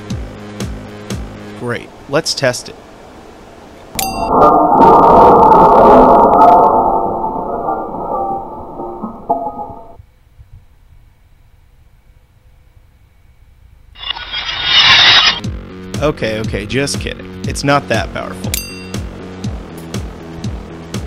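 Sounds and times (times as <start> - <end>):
glass shattering: 4.0 - 10.0.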